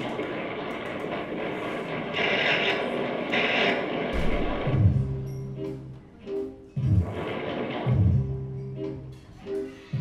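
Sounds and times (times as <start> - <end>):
drums: 3.3 - 6.0.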